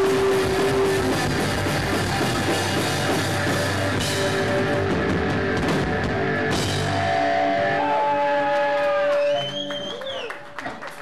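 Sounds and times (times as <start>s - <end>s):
drum kit: 0.0s - 8.5s
metal band playing live: 0.0s - 8.8s.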